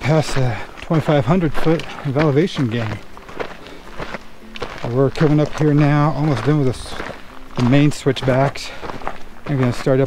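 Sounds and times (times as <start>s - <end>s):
footsteps on dirt trail: 0.0s - 10.0s.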